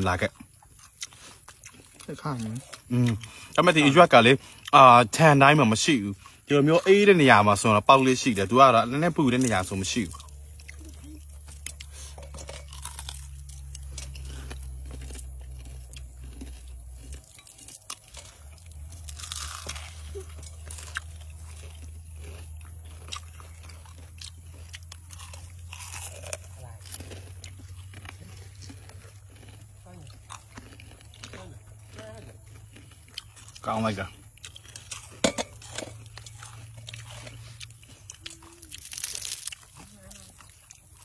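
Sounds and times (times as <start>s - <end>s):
chewing crunchy food: 0.0s - 41.0s.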